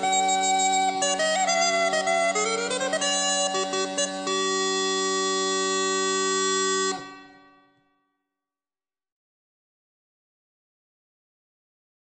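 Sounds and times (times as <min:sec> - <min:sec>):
bagpipe music: 0:00.0 - 0:07.8.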